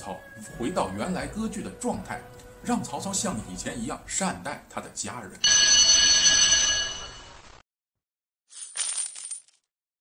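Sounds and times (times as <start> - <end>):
bell-like chime: 5.4 - 7.4.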